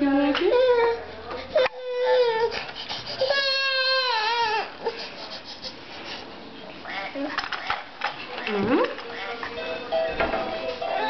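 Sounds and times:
baby crying: 3.2s - 5.0s.

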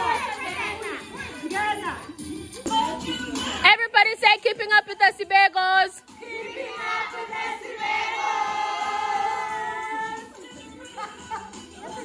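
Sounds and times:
women singing in unison: 6.0s - 11.2s.

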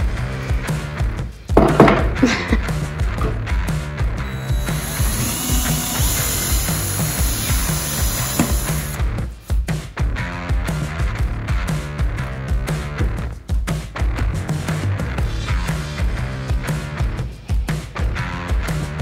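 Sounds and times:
background music with steady beat: 0.0s - 19.0s
cordless drill boring into wood: 4.2s - 9.0s.

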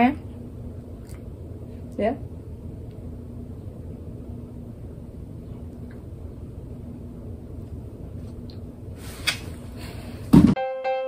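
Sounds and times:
faint broken hum: 0.0s - 10.6s.

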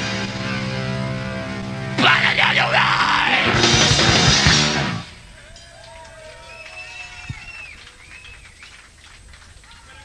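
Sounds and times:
high whistle-like tones: 5.4s - 8.6s.

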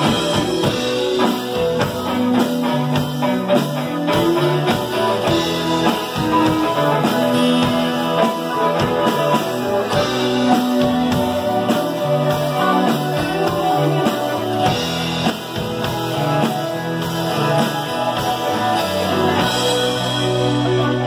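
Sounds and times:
drum-kit beat: 0.0s - 21.0s
electric guitars: 0.0s - 21.0s
keyboard: 0.0s - 21.0s.

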